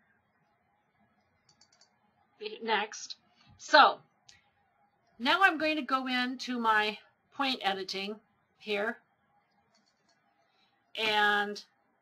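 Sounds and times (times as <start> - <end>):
computer mouse clicks: 0.5 - 2.1, 9.4 - 10.6.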